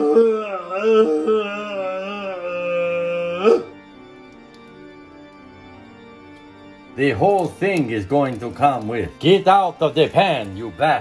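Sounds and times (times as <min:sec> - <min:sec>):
person chanting long held notes: 0:00.0 - 0:03.8.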